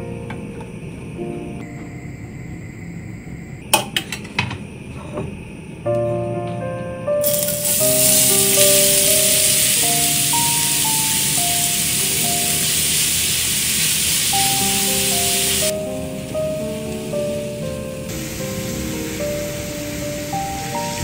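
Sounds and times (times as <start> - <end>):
background music simple melody: 0.0 - 1.8, 5.9 - 13.4, 14.2 - 21.0
carrot sizzling in hot oil: 7.2 - 21.0.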